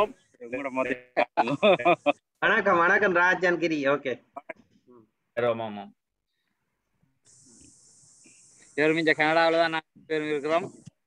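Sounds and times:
faint high-pitched hiss: 4.3 - 11.0.

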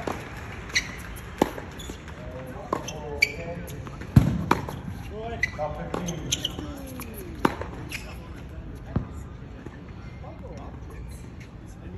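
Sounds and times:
tennis ball racket hits: 0.0 - 3.2.

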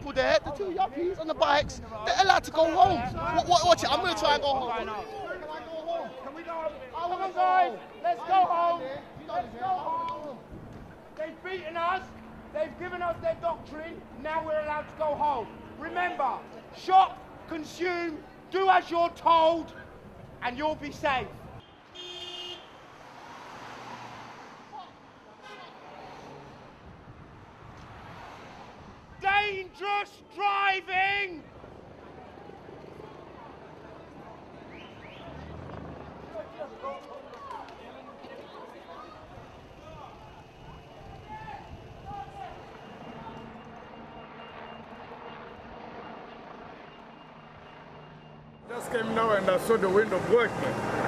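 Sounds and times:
street noise: 0.0 - 51.0
van driving past: 48.6 - 51.0.

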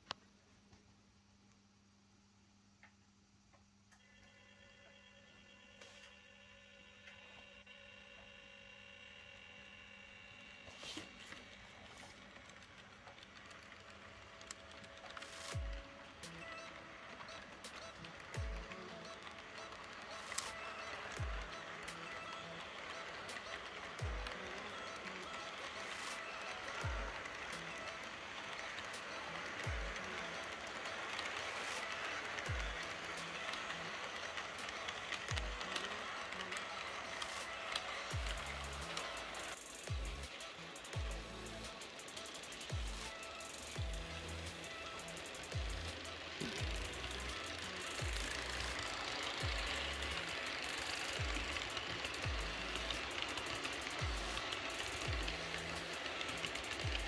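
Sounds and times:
model train wheels clicking: 10.3 - 57.0
electronic music: 15.4 - 30.9, 31.5 - 34.0, 35.3 - 57.0.

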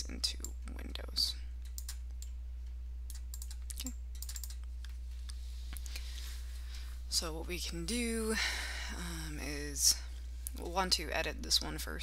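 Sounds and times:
low electrical hum: 0.0 - 12.0
keyboard and mouse clicking: 1.6 - 2.4, 3.1 - 4.7.

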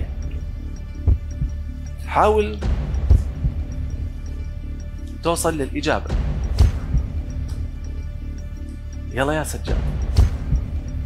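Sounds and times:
low heartbeat-like pulse: 0.0 - 1.9, 2.6 - 4.8, 6.1 - 8.2, 9.7 - 11.0
countdown music: 0.0 - 11.0.

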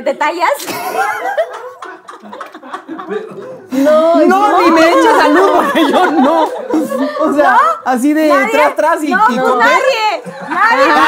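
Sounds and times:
group laughing and snickering: 0.6 - 7.8, 9.4 - 11.0.

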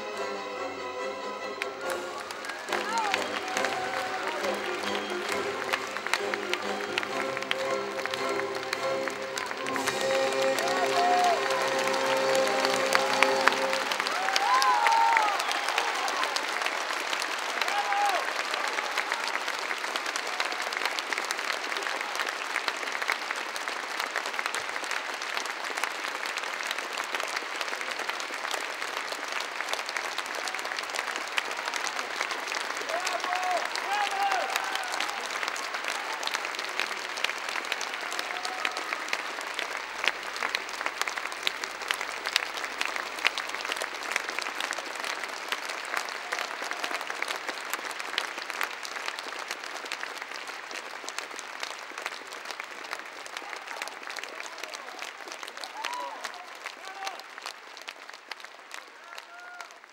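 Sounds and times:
audience applauding: 0.0 - 59.9.

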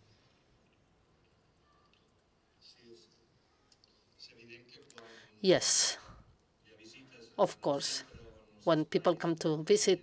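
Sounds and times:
faint voice: 1.4 - 8.5.

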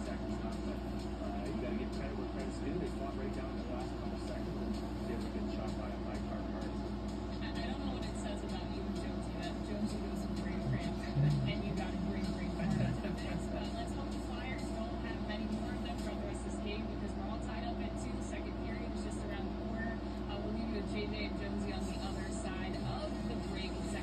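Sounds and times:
faint sports commentary from tv: 0.0 - 24.0
steady low hum: 0.0 - 24.0.

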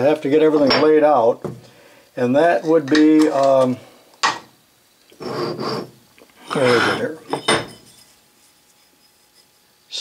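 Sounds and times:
metal block scraping on wood: 5.2 - 9.6.

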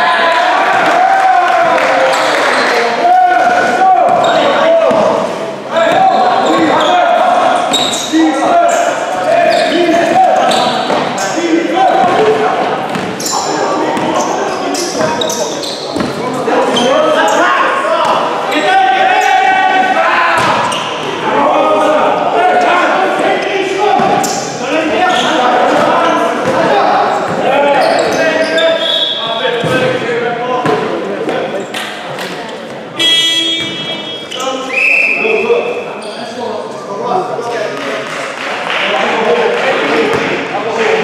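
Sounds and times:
players calling out: 0.0 - 38.1
basketball bouncing on wooden court: 12.0 - 13.2, 14.0 - 14.2.

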